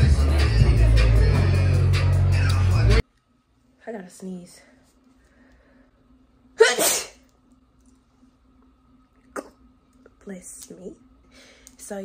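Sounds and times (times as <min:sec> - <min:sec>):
woman sneezing: 0:06.6 - 0:07.2.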